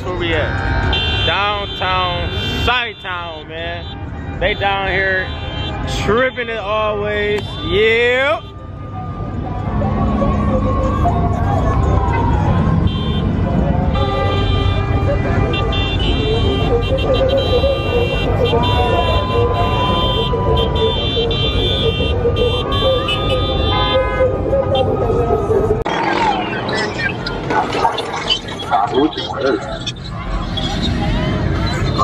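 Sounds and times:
car horns blaring: 0:00.0 - 0:08.8, 0:12.3 - 0:26.7
car engines rumbling: 0:00.0 - 0:32.0
people talking and shouting: 0:05.8 - 0:32.0.

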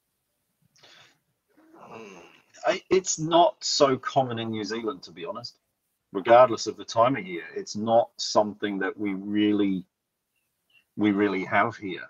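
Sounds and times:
man speaking hesitantly: 0:02.6 - 0:05.5, 0:06.2 - 0:09.8, 0:11.0 - 0:12.0.

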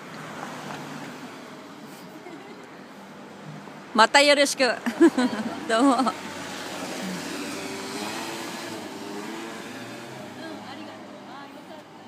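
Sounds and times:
vehicle engine and tyres passing: 0:00.0 - 0:12.0.

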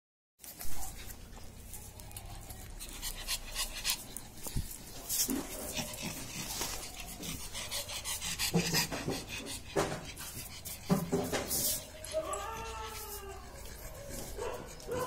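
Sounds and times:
dog panting: 0:00.4 - 0:15.0.

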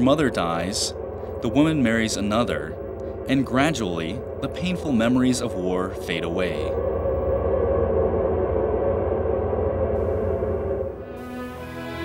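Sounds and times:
deep hum: 0:00.0 - 0:12.0
low drone: 0:00.0 - 0:12.0.

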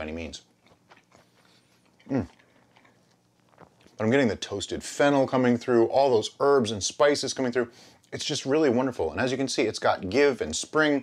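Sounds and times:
person chewing: 0:00.4 - 0:04.0.

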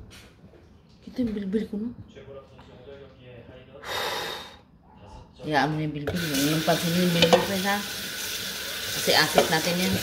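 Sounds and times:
water rushing from a tap: 0:06.1 - 0:10.0.

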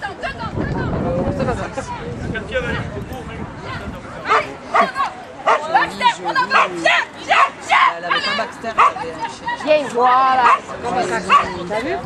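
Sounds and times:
dog barking excitedly: 0:04.3 - 0:05.8, 0:06.5 - 0:09.0, 0:10.4 - 0:11.6.

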